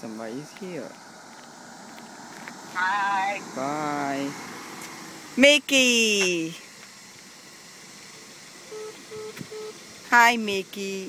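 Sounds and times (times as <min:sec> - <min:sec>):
short electronic beeps: 0:08.7 - 0:09.8.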